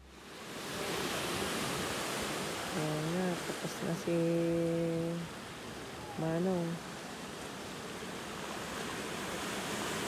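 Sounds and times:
ocean surf breaking on rocks: 0.0 - 10.0.

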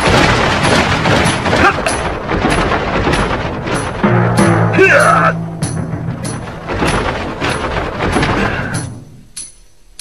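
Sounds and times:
sharp booming hits: 0.0 - 9.1.

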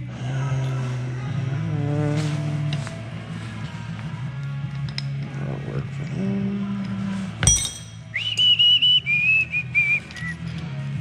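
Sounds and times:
sharp metallic clink: 7.4 - 8.2
person whistling a tune: 8.1 - 10.5.

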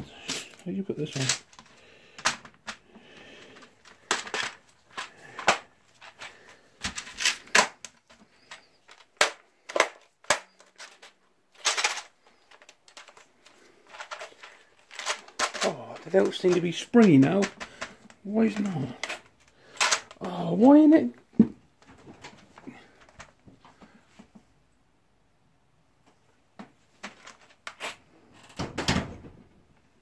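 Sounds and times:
plastic keyboard clicks and knocks: 1.1 - 2.8, 13.9 - 20.2.

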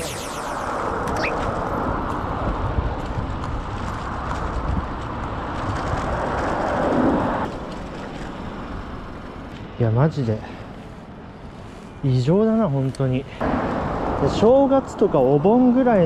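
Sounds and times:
wind rushing over microphone: 0.0 - 7.5
low road noise: 0.0 - 16.0.

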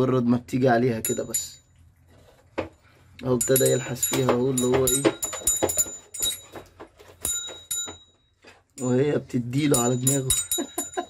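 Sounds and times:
dog collar jingling: 3.4 - 8.2, 9.7 - 11.0.

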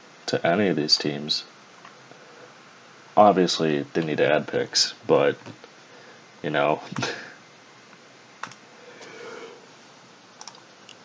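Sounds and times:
computer mouse click: 10.4 - 11.0.

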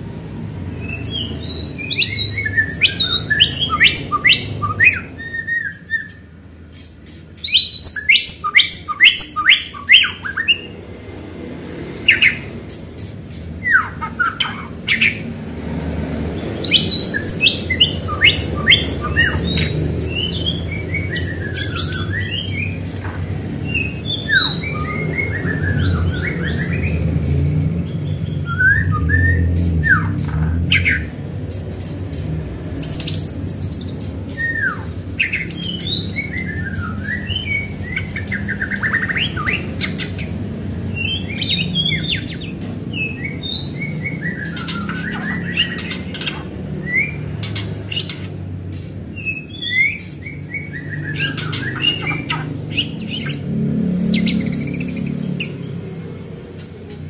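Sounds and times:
bird singing rapid chirps: 0.4 - 57.0.

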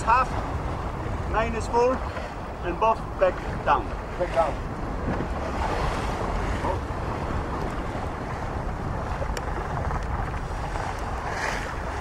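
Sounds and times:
water rushing along hull: 0.0 - 12.0
wind buffeting microphone: 0.0 - 12.0.

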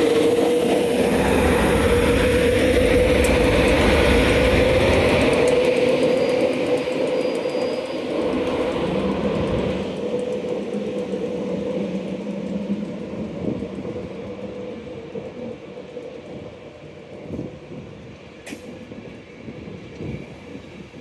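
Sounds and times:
train coaches rumbling: 0.0 - 21.0
train electric hum: 0.0 - 21.0.

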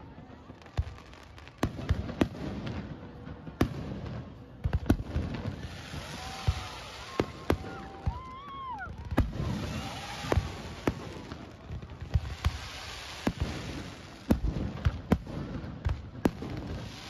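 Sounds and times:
fireworks bangs: 0.0 - 17.0
hiss of burning shells: 5.4 - 17.0.

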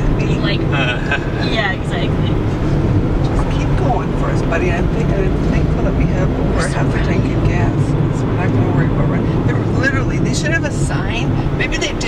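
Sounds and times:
car engine and road drone: 0.0 - 12.0
people talking: 0.0 - 12.0.

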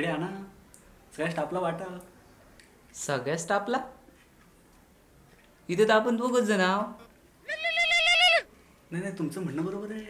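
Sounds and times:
wavering bleat-like cries: 7.4 - 8.5.

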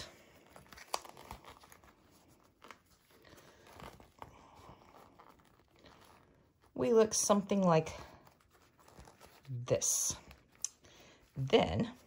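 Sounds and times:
fabric rustling and crinkling: 0.0 - 12.0.

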